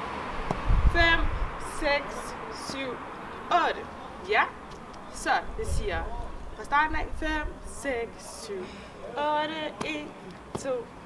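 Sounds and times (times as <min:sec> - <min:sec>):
woman speaking: 0:00.9 - 0:10.9.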